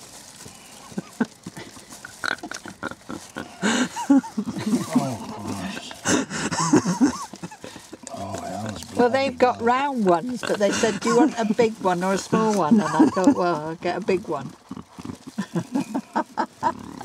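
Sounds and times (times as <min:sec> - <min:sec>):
paper wrapper rustling: 0:00.0 - 0:17.0
wordless murmurs: 0:00.4 - 0:17.0.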